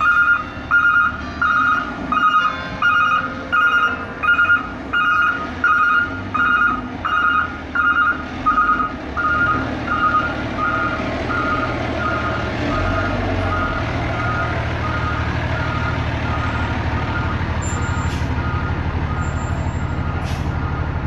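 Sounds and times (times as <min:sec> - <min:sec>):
diesel engine running: 0:00.0 - 0:21.0
truck reverse alarm beeping: 0:00.0 - 0:21.0.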